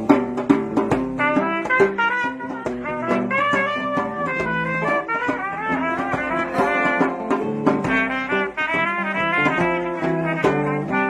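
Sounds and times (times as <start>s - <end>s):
drum hits: 0.0s - 10.5s
lead melody line: 1.4s - 10.0s
sustained bass notes: 5.8s - 8.5s.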